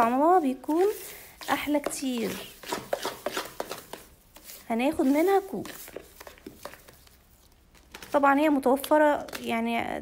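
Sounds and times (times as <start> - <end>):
hand squishing wet batter: 0.0 - 8.2.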